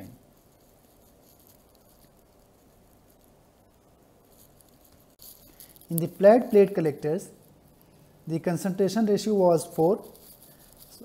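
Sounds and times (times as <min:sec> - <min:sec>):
marker pen scratching on whiteboard: 0:00.0 - 0:07.0.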